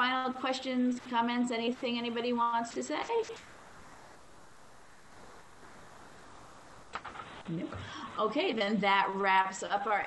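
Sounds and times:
faint line noise hiss: 0:00.0 - 0:10.0.

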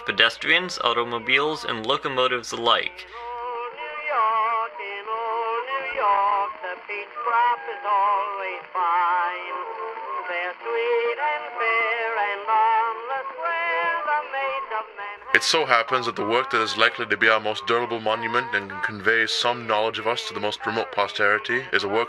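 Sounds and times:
man singing with vibrato: 0:00.0 - 0:22.0
musical accompaniment: 0:00.0 - 0:22.0.

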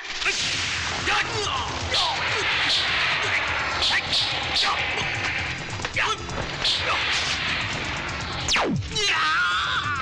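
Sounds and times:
whooshing and swishing effects: 0:00.0 - 0:08.9.

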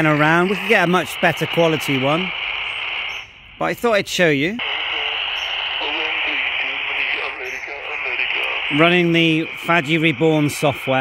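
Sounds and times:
faint radio voice: 0:00.0 - 0:02.5, 0:04.6 - 0:11.0
radio hiss: 0:00.0 - 0:11.0.

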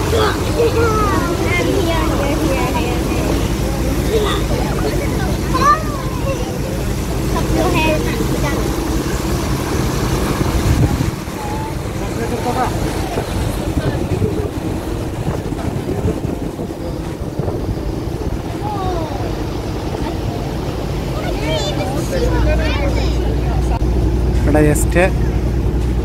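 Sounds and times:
boat engine hum: 0:00.0 - 0:26.0
passengers' voices: 0:00.0 - 0:26.0
water noise: 0:00.0 - 0:26.0
wind: 0:00.0 - 0:26.0.

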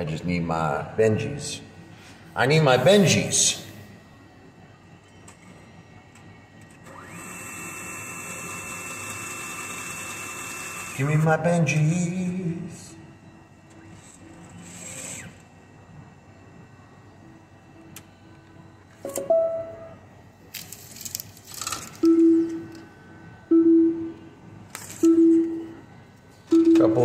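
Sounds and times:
banknotes whirring out: 0:20.5 - 0:22.8.

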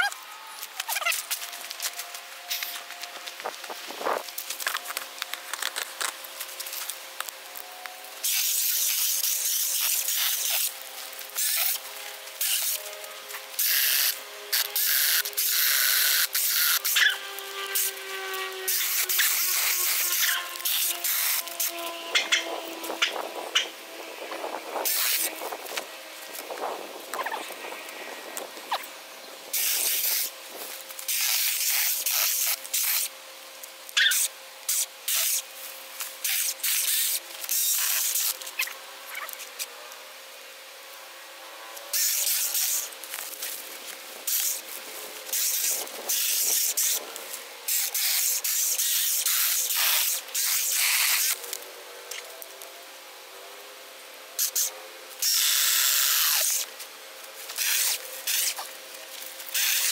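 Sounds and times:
electric motor whining: 0:00.0 - 0:32.1
chainsaw cutting wood: 0:00.6 - 0:23.8, 0:29.5 - 0:33.2, 0:34.0 - 0:39.7, 0:41.8 - 0:52.5, 0:54.4 - 0:56.8, 0:57.4 - 0:59.9.

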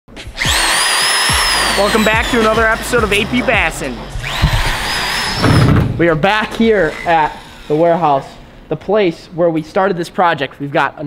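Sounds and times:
electric drill motor whine: 0:00.4 - 0:05.9, 0:06.8 - 0:08.2.

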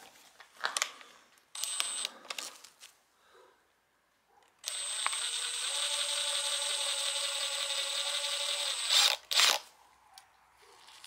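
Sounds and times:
drill motor whining: 0:01.6 - 0:02.1, 0:04.6 - 0:09.6.

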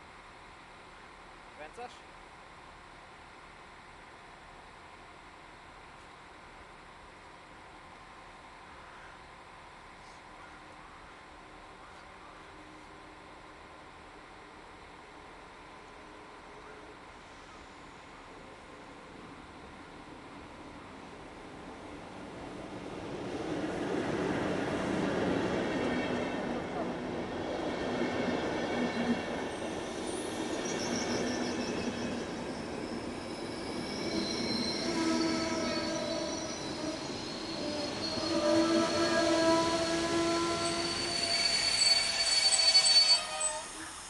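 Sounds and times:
train rumble and wheel noise: 0:00.0 - 0:44.0
high squealing brakes: 0:28.5 - 0:44.0.

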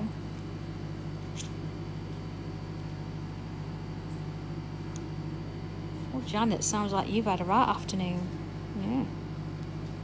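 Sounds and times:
low electrical hum with hiss: 0:00.0 - 0:10.0.

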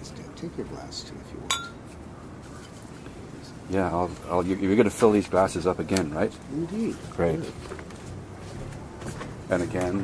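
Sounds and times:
wine glass clinking: 0:01.5 - 0:01.8.

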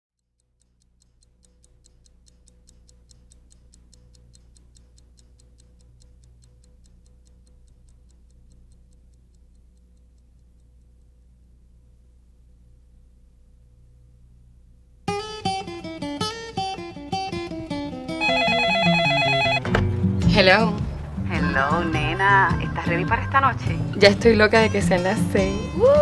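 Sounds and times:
fast clock ticking: 0:00.2 - 0:11.7, 0:15.3 - 0:19.6
low steady hum: 0:00.4 - 0:26.0.

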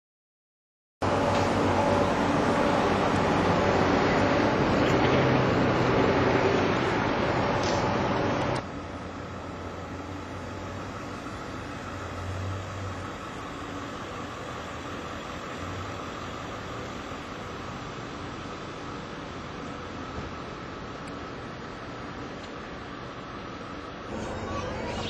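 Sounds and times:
loud rushing noise: 0:01.0 - 0:08.6
steady low hum: 0:01.0 - 0:25.0.

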